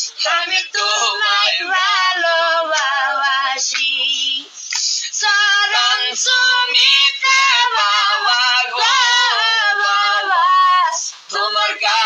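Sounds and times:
high voice singing devotional song: 0.0 - 12.0.

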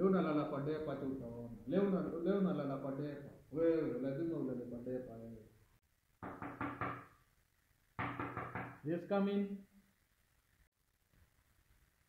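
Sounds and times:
knocks on a door: 6.2 - 7.2, 8.0 - 8.8.

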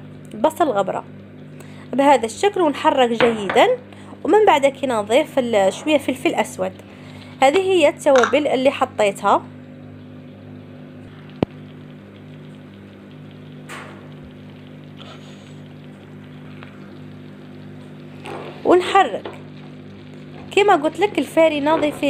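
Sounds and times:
steady low hum: 0.0 - 22.0
sauce bubbling in a frying pan: 1.0 - 21.8.

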